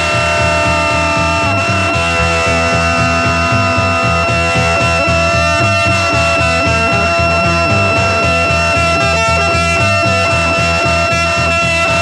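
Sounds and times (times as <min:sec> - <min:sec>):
psychedelic rock music: 0:00.0 - 0:12.0.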